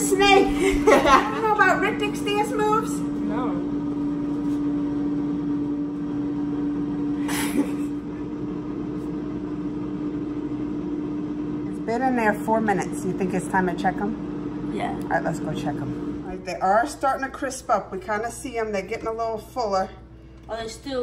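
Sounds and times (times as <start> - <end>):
air fryer humming: 0.0 - 21.0.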